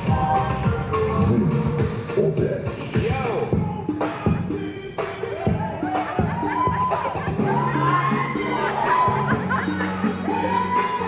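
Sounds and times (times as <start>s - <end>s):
music playing: 0.0s - 11.0s
group shouting and whooping: 5.2s - 11.0s.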